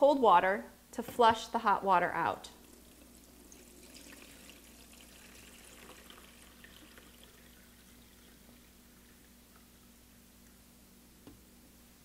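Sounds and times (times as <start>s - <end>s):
water trickling into reservoir: 2.6s - 10.2s.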